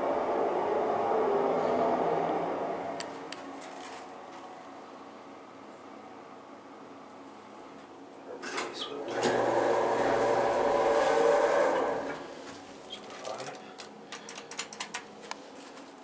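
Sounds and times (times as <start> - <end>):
elevator doors rumbling open: 8.4 - 12.3
sharp clicks: 13.4 - 15.1.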